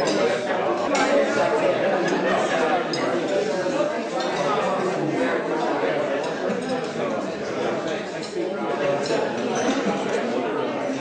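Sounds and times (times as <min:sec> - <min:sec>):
crowd chattering in a hall: 0:00.0 - 0:11.0.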